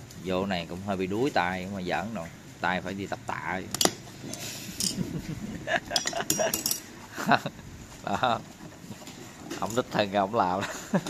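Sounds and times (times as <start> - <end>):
light metallic clicks and clinks: 3.7 - 5.0, 6.0 - 6.9.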